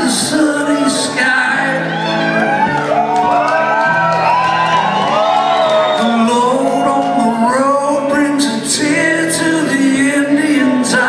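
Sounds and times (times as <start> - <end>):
crowd whooping and shouting: 0.0 - 8.2
live rock band: 0.0 - 11.0.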